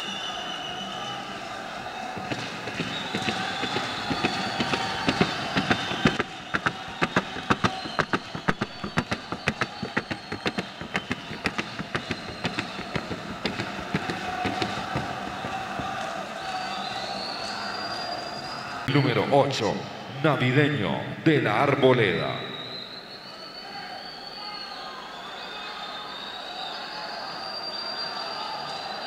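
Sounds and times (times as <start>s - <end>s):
arena hubbub: 0.0s - 29.0s
hoofbeats on wooden board: 2.0s - 17.1s.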